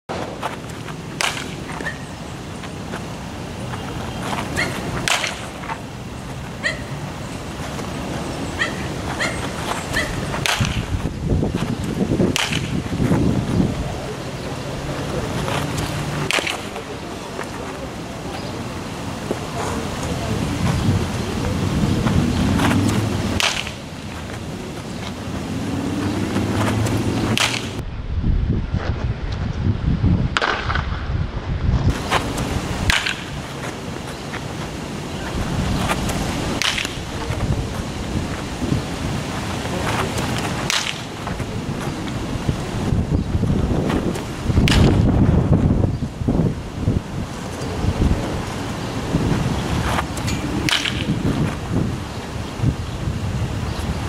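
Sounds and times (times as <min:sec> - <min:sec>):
baseball bat hitting ball: 0:01.1 - 0:02.1, 0:04.4 - 0:05.8, 0:08.6 - 0:10.9, 0:12.3 - 0:12.8, 0:16.2 - 0:16.8, 0:22.6 - 0:23.8, 0:27.2 - 0:27.8, 0:32.9 - 0:33.4, 0:36.6 - 0:37.4, 0:40.2 - 0:41.1, 0:44.6 - 0:45.0, 0:50.2 - 0:51.4
wind rumble on microphone: 0:07.3 - 0:16.2, 0:18.9 - 0:54.0.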